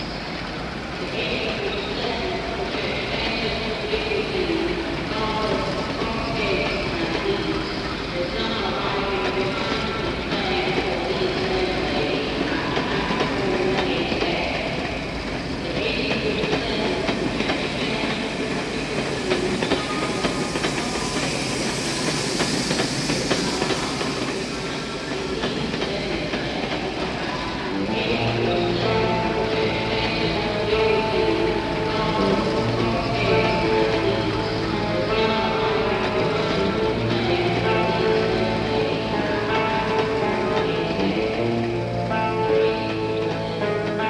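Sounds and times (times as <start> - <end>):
train rumbling on rails: 0.0 - 44.0.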